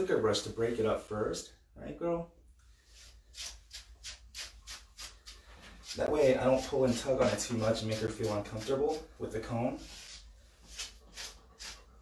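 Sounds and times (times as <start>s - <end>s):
scratchy brush strokes through fur: 2.8s - 12.0s.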